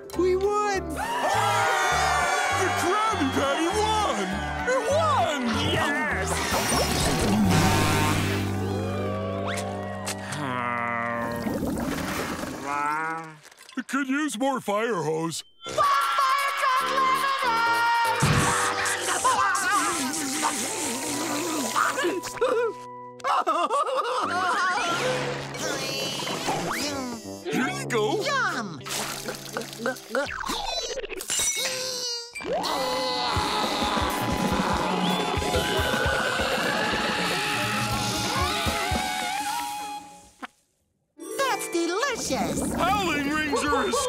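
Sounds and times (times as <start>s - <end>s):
background music: 0.0s - 10.4s, 15.5s - 30.4s, 32.4s - 40.4s, 41.2s - 44.0s
cartoon warbling gurgle: 5.5s - 8.5s, 10.6s - 13.6s, 28.8s - 31.3s, 32.4s - 38.8s, 42.1s - 44.0s
comic sound effects: 5.5s - 9.8s, 42.1s - 44.0s
bubbly warbling sound effects: 6.1s - 8.8s, 11.1s - 13.7s, 42.1s - 44.0s
cartoon character yelling and gagging: 15.7s - 20.4s, 31.6s - 34.5s, 42.3s - 44.0s.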